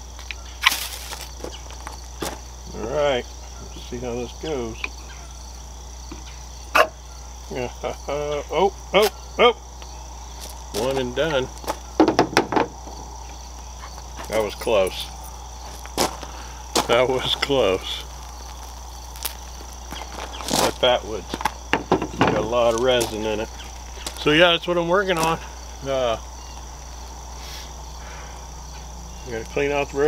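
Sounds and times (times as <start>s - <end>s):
crickets chirping: 0.0s - 30.0s.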